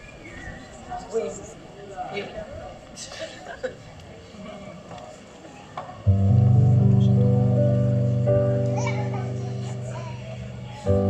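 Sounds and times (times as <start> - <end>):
audience chatter: 0.0 - 11.0
keyboard sustained chords: 6.1 - 11.0
children's voices: 8.6 - 11.0.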